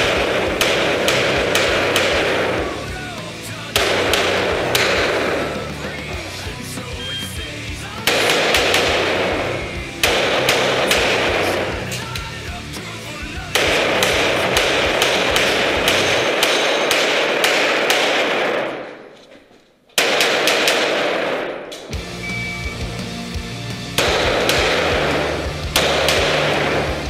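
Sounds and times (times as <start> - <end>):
pistol fired in fast strings: 0.0 - 6.0, 8.0 - 12.1, 13.5 - 19.0, 20.0 - 22.0, 23.8 - 27.0
music: 0.0 - 16.3, 21.9 - 27.0.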